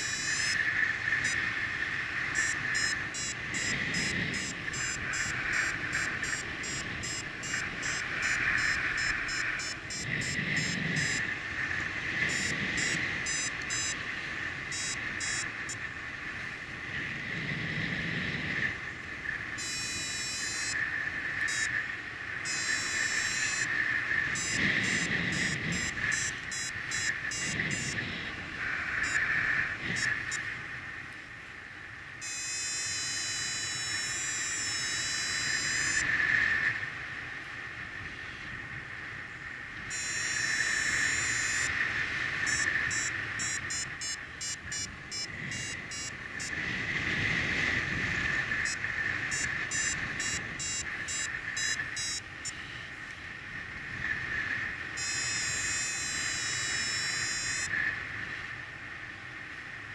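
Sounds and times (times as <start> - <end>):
variometer short beeps: 0.0 - 0.6, 1.2 - 1.4, 2.3 - 11.3, 12.2 - 14.0, 14.7 - 15.8, 19.6 - 20.8, 21.4 - 21.8, 22.4 - 23.7, 24.3 - 28.0, 29.0 - 29.2, 29.9 - 30.4, 32.2 - 36.1, 39.9 - 41.8, 42.4 - 46.6, 48.6 - 52.9, 55.0 - 57.7
long unbroken tone: 0.0 - 1.5, 2.3 - 11.3, 19.6 - 20.8, 22.4 - 23.7, 32.2 - 36.1, 39.9 - 41.8, 42.4 - 46.5, 48.6 - 52.9, 55.0 - 57.7
wind rumble on microphone: 0.0 - 59.9.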